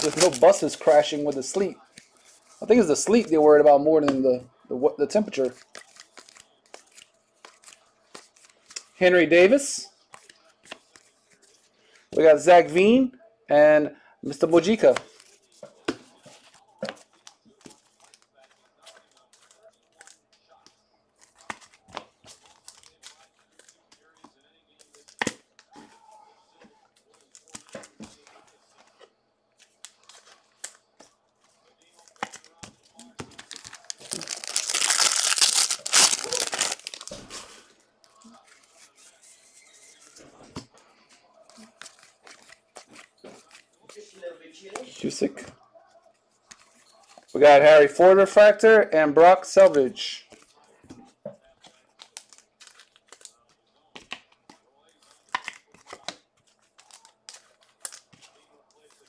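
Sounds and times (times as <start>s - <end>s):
foil pack tearing and crinkling: 0.0s - 0.6s, 33.4s - 37.2s
wrapper and cards rustling: 0.0s - 4.2s, 5.2s - 12.4s, 14.3s - 48.6s, 49.4s - 59.0s.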